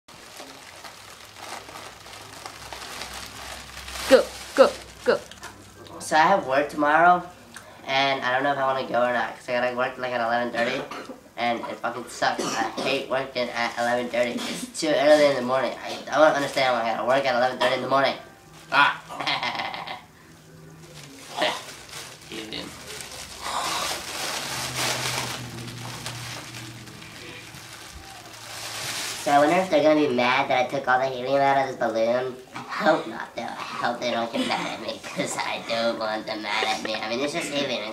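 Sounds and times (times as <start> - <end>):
foil balloon crinkling: 0.1 - 5.8, 16.0 - 17.3, 20.8 - 30.4.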